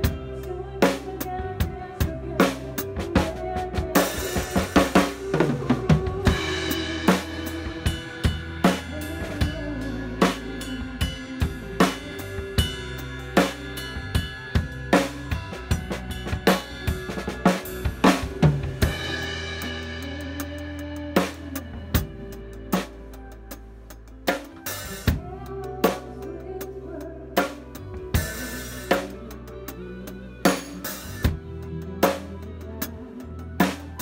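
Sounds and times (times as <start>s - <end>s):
band bass and chords: 0.0s - 34.0s
drum kit groove: 0.0s - 34.0s.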